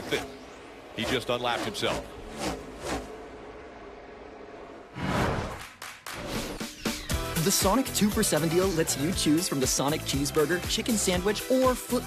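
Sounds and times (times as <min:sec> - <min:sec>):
race car engines passing: 0:00.0 - 0:06.6
loud whoosh: 0:00.1 - 0:07.1.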